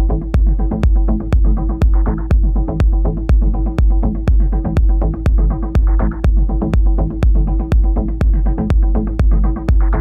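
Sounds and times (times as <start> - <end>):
electronic music with deep beat: 0.0 - 10.0.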